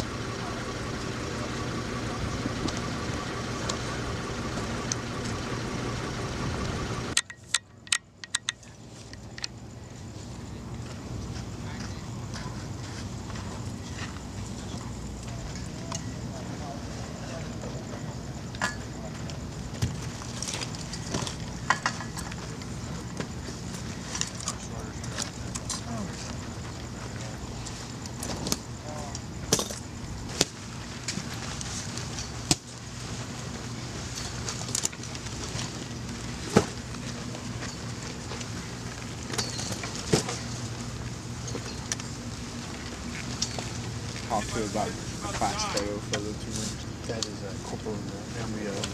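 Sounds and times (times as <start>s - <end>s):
steady low hum: 0.0s - 48.9s
knocks and clatter of gear: 7.1s - 9.6s, 18.5s - 28.7s, 34.1s - 44.4s.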